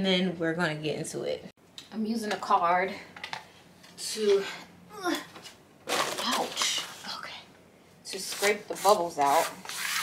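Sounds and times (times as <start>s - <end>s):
woman speaking: 0.0s - 3.1s, 4.0s - 5.3s, 6.1s - 9.6s.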